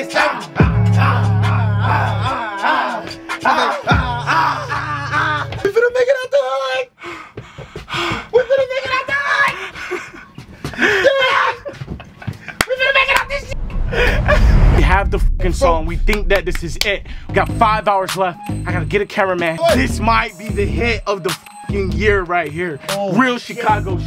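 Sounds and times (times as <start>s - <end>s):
rapping over a beat: 0.0s - 5.4s, 14.8s - 24.0s
deep bass: 0.6s - 2.3s, 13.0s - 19.0s, 19.7s - 21.0s, 21.7s - 22.2s, 23.7s - 24.0s
laughter: 3.4s - 5.6s, 9.8s - 12.9s
excited shouting: 8.4s - 9.6s, 10.9s - 11.8s.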